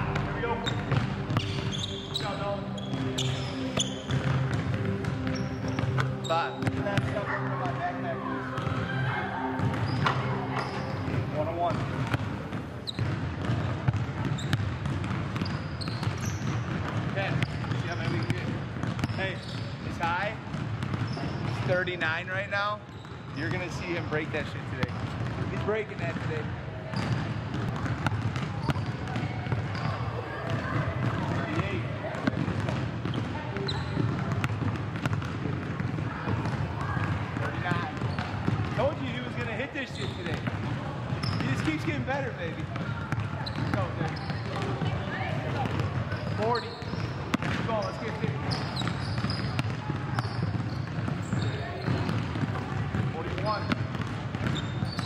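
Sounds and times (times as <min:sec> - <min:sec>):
basketballs bouncing on hardwood: 0:00.0 - 0:07.8, 0:08.6 - 0:08.9, 0:09.6 - 0:19.8, 0:20.4 - 0:22.0, 0:22.8 - 0:55.0.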